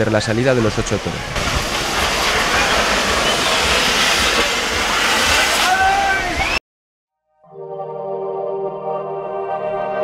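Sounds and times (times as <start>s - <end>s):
fireworks hissing: 0.8s - 6.5s
whistling glides: 4.9s - 6.6s.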